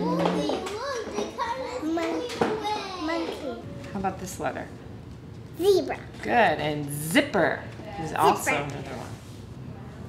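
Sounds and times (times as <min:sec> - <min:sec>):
young children talking: 0:00.0 - 0:03.6.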